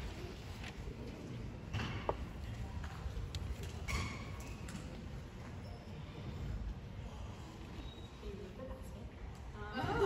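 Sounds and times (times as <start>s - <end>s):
faint audience rustling: 0.0s - 3.8s.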